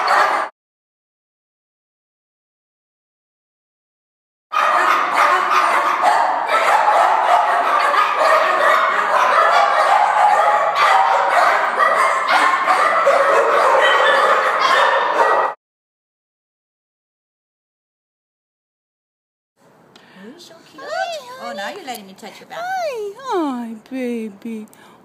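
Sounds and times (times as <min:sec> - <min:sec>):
many dogs barking and yipping: 0:00.0 - 0:00.5, 0:04.5 - 0:15.6.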